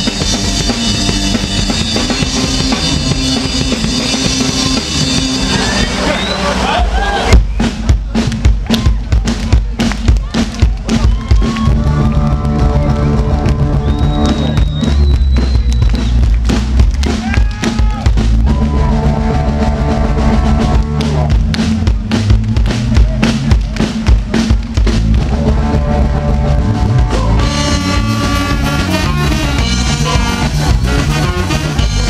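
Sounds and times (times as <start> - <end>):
live ska band playing: 0.0 - 8.4, 10.8 - 32.0
saxophone: 25.3 - 32.0.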